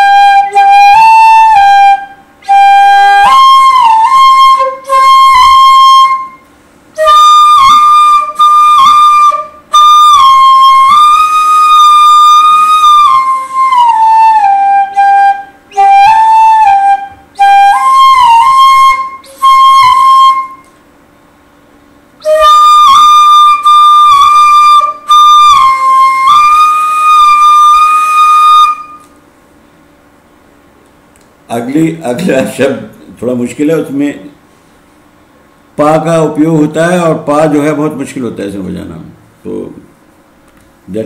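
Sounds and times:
bamboo flute melody: 0.0s - 20.8s, 22.2s - 29.2s.

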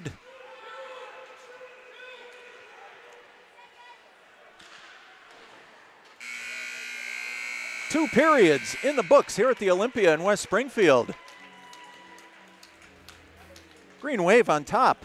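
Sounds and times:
ice rink crowd and play: 0.0s - 15.0s
arena horn buzzing: 6.2s - 9.8s.

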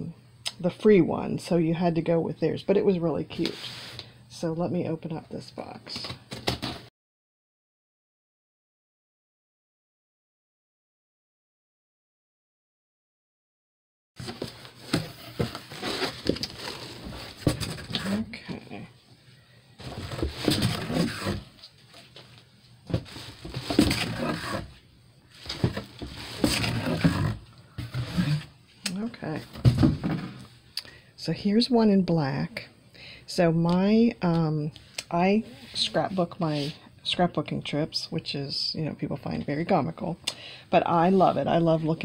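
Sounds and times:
cardboard scraping: 14.2s - 18.4s, 19.8s - 22.2s, 22.9s - 28.5s.

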